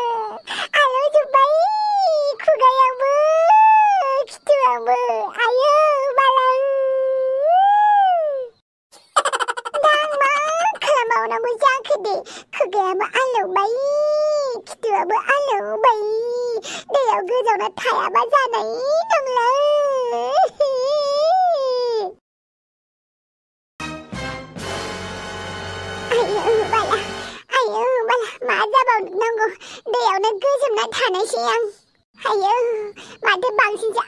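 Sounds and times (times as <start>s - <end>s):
high-pitched voice wailing: 0.0s - 8.5s, 9.3s - 11.3s, 26.1s - 28.2s
cartoon voice wailing: 9.2s - 11.2s, 26.1s - 27.4s.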